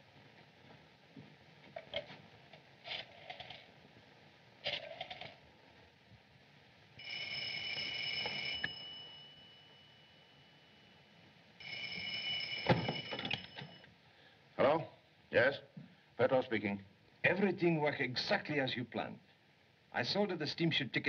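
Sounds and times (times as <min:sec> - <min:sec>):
telephone bell ringing: 0:07.0 - 0:10.6, 0:11.6 - 0:13.9.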